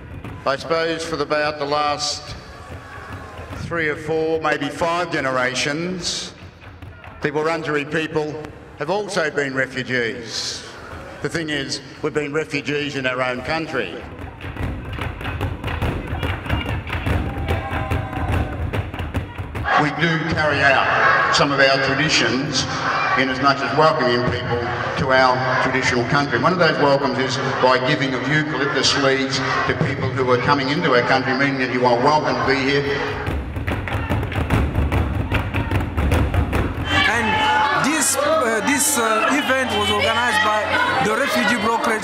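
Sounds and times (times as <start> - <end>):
repeated drum strikes: 2.3 - 4.8, 6.0 - 7.7, 14.0 - 19.7, 33.0 - 39.0.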